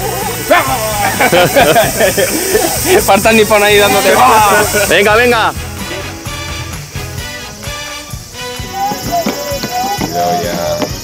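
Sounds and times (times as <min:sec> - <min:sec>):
people calling out: 0:00.0 - 0:01.5, 0:03.6 - 0:06.4, 0:08.4 - 0:11.0
steady high hiss: 0:00.0 - 0:11.0.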